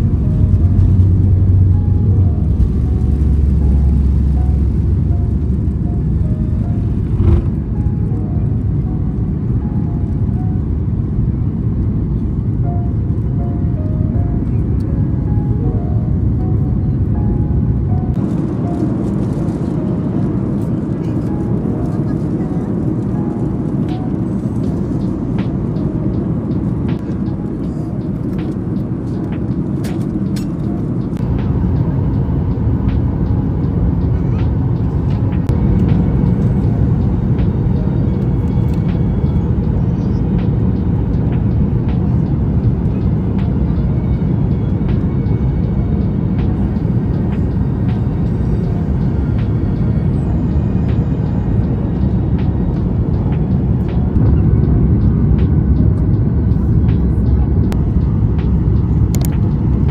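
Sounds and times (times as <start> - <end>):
jet airliner cabin roar: 0.0 - 59.9.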